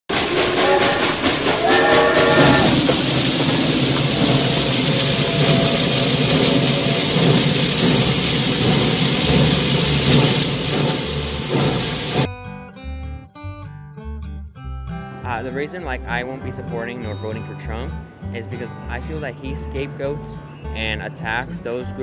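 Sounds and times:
steam train hiss and rumble: 0.1 - 12.3
steam whistle blowing: 0.1 - 12.3.

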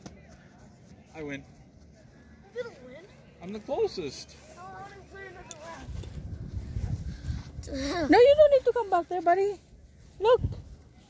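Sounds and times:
low rumble on microphone: 5.9 - 8.4.

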